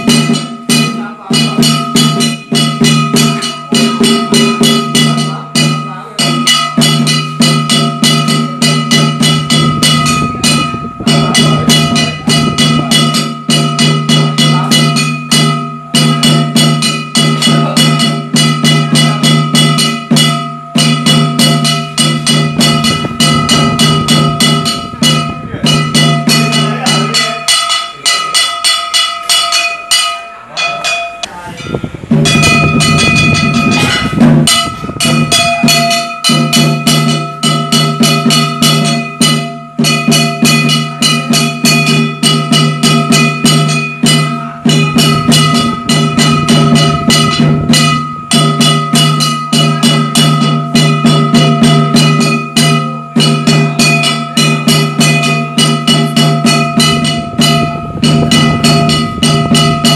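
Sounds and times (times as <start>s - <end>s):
fast percussion strikes: 0.0s - 59.9s
ringing metal tones: 0.0s - 59.9s.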